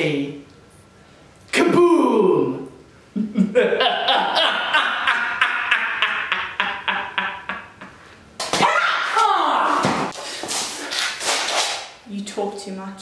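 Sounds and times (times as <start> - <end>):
man laughing: 3.1 - 8.1.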